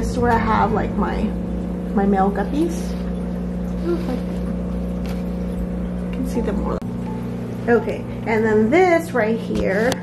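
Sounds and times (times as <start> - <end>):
aquarium equipment humming: 0.0 - 10.0.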